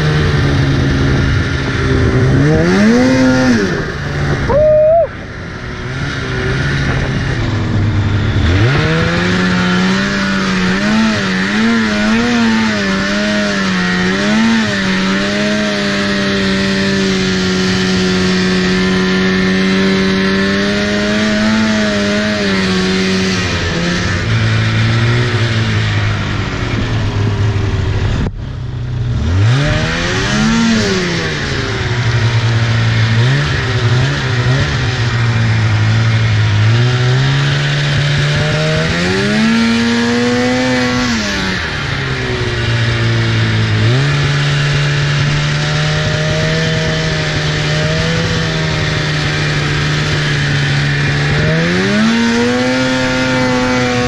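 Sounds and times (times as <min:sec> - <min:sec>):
snowmobile engine revving: 0:00.0 - 0:54.0.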